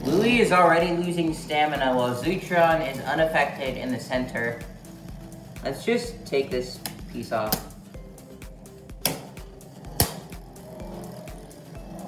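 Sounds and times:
spinning tops whirring: 0.0 - 12.0.

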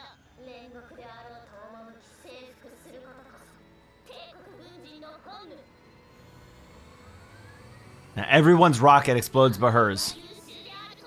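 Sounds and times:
rocket engine rush with whine: 5.7 - 10.8.

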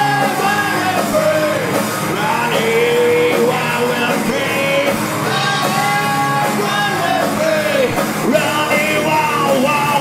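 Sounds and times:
bass guitar: 0.0 - 10.0
distorted electric guitars: 0.0 - 10.0
drum kit: 0.0 - 10.0
melodic guitar lead line: 0.0 - 10.0.

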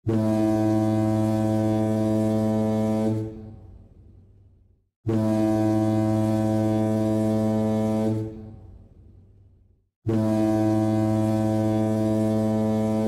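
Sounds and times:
foghorn blasts: 0.0 - 3.8, 5.0 - 8.8, 10.0 - 13.0.

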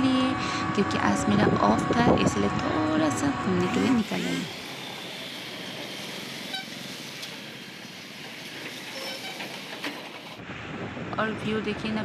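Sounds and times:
lorry passing close: 0.0 - 8.8
road and traffic noise: 0.0 - 12.0.

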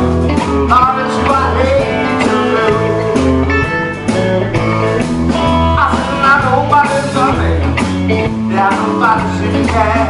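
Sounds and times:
electric lead guitar bending notes: 0.0 - 8.6
live blues band: 0.0 - 10.0.

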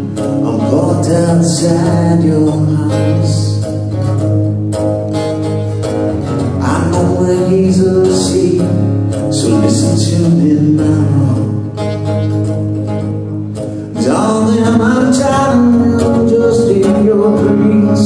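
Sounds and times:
man singing: 0.0 - 3.9, 6.5 - 12.2, 13.9 - 18.0
acoustic guitar strumming: 0.0 - 18.0.

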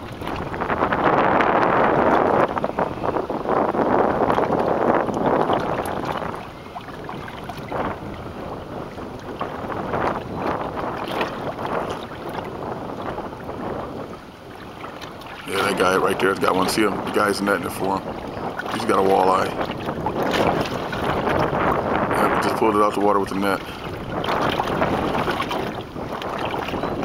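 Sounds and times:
waves lapping against boat: 0.0 - 27.0
wind buffeting microphone: 0.0 - 27.0.

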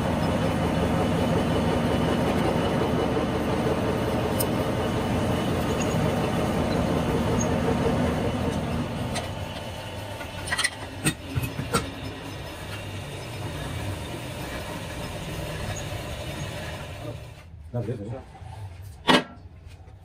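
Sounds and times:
metal lathe drone: 0.0 - 10.9.

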